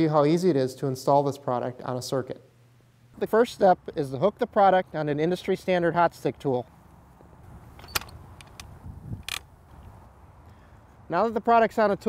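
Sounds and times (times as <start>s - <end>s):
sharp plastic clicks: 7.8s - 9.5s.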